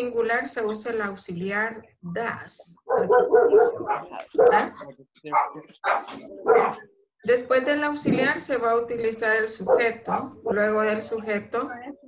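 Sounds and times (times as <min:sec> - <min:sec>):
dog barking: 0:02.8 - 0:06.9, 0:09.6 - 0:10.7.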